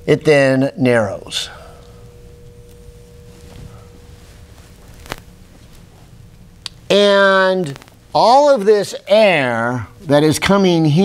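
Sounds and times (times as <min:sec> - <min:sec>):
faint thin steady tone: 0:00.9 - 0:04.9.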